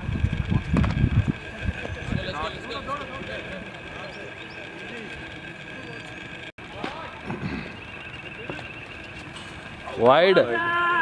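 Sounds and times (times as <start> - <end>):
wind buffeting microphone: 0.0 - 6.5
faint distant voices calling: 0.4 - 11.0.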